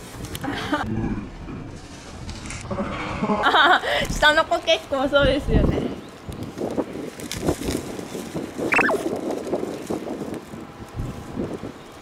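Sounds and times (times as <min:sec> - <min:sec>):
outdoor background noise: 0:00.0 - 0:12.0
short falling chirp: 0:08.7 - 0:09.0.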